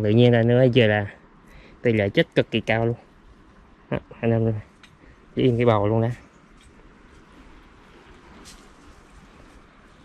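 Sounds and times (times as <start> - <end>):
faint outdoor noise: 0.0 - 10.0
brush rustling: 4.4 - 10.0.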